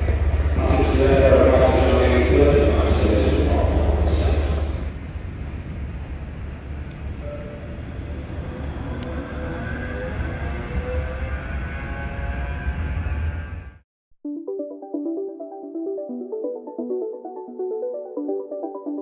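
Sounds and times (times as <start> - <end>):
echoing station hall noise: 0.0 - 13.8
tram motor whine: 0.0 - 13.8.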